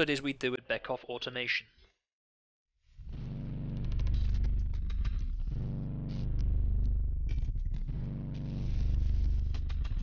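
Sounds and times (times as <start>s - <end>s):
deep low drone: 3.0s - 10.0s.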